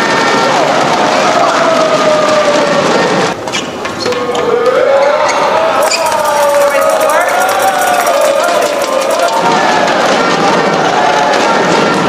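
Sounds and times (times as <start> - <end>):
spectators cheering: 0.0 - 3.4, 4.1 - 12.0
shoes squeaking on court floor: 3.4 - 4.4, 5.0 - 9.1.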